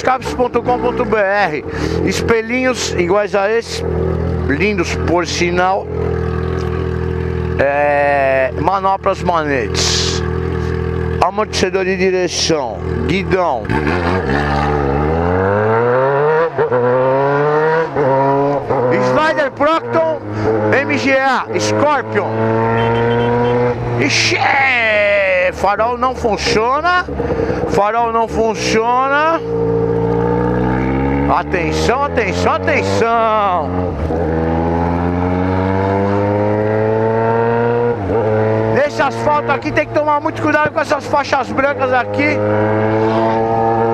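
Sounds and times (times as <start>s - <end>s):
motorcycle engine accelerating: 0.0s - 43.9s.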